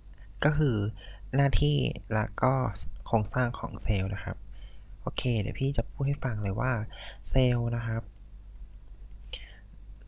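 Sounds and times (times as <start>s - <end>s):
steady low hum: 0.0s - 10.0s
intake of breath: 6.9s - 7.2s.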